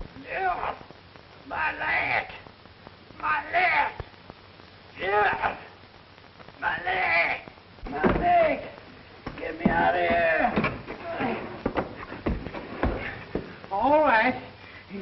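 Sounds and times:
man groaning and grunting: 0.2 - 0.8
sharp knocks: 9.2 - 13.5.

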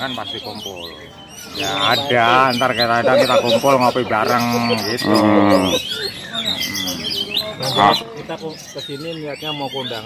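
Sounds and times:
birds chirping and whistling: 0.0 - 10.0.

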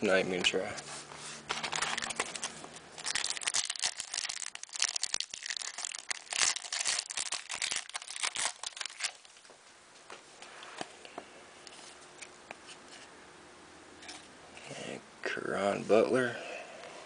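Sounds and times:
foil wrapper crinkling and tearing: 1.5 - 9.4.

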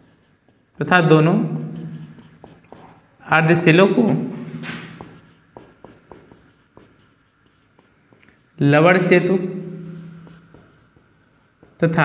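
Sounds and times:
marker tapping and scratching whiteboard: 0.0 - 12.0.

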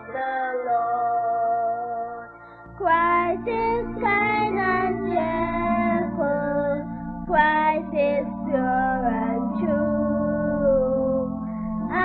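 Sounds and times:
instrumental accompaniment: 0.0 - 12.0
voices singing children's song: 0.0 - 12.0.

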